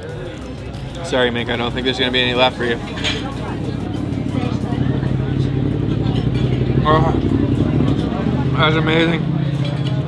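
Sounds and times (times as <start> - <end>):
vehicle engine running: 0.0 - 10.0.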